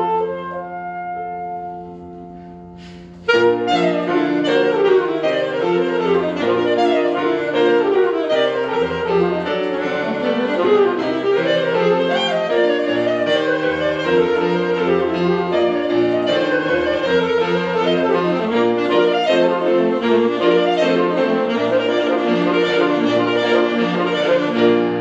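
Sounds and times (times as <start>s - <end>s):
alto saxophone: 0.0s - 25.0s
piano: 0.0s - 25.0s.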